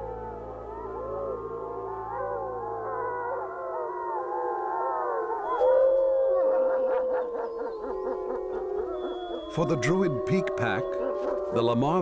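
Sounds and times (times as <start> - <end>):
long falling wolf howl: 0.0 - 12.0
wolves howling in chorus: 0.0 - 12.0.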